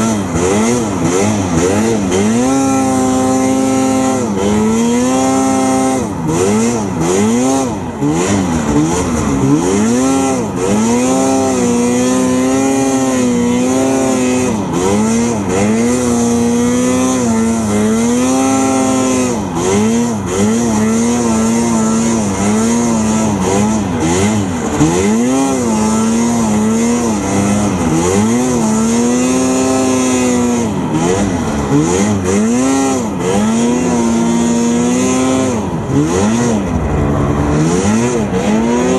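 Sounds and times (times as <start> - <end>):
snowmobile engine revving: 0.0 - 38.9.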